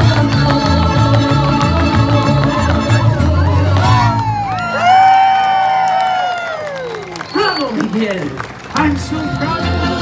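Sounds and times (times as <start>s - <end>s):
live latin music: 0.0s - 5.2s, 8.8s - 10.0s
crowd cheering: 3.3s - 8.9s.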